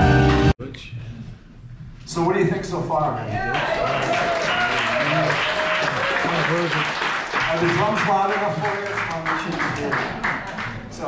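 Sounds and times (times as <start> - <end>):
audience applauding: 3.5 - 11.0.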